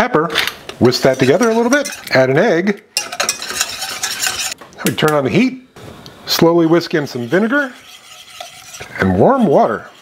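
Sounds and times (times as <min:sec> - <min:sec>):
whisk scraping metal pan: 0:00.8 - 0:02.3, 0:03.0 - 0:04.6, 0:06.7 - 0:10.0.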